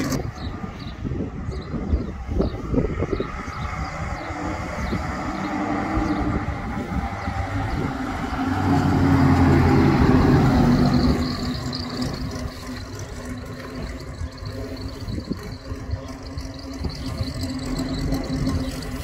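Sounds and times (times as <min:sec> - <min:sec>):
car engine passing by: 0:02.7 - 0:14.9.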